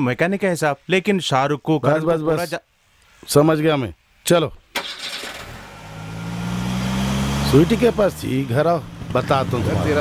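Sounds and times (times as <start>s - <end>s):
car engine starting and running: 4.7s - 10.0s.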